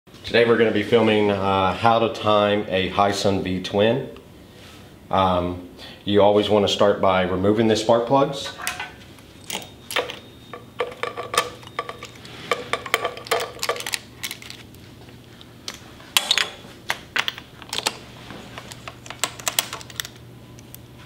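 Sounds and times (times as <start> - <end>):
metallic clinks of tools: 9.4 - 14.4.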